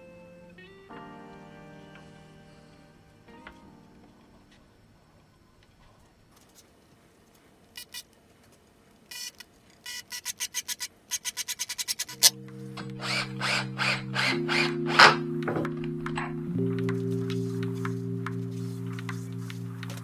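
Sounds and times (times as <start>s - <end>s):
background music with held tones: 0.0s - 5.2s, 12.1s - 20.0s
screw driving bursts: 9.1s - 12.3s.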